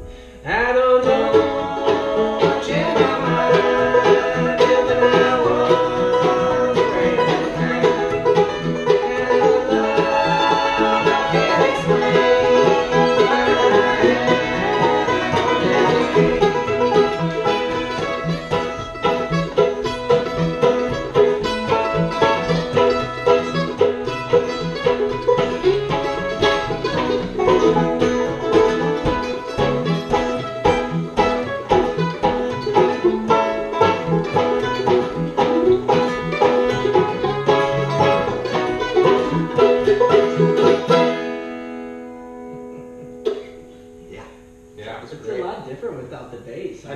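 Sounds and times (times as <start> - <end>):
banjo: 0.0 - 46.1
fiddle: 0.0 - 46.4
guitar: 0.0 - 46.9
mandolin: 0.0 - 46.9.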